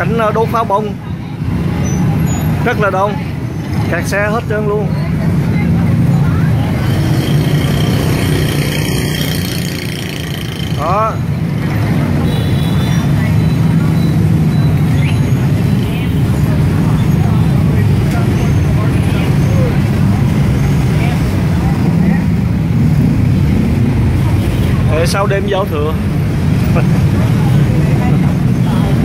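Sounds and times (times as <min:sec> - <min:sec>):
crowd chatter: 0:00.0 - 0:29.0
motorbike engines humming: 0:00.0 - 0:29.0.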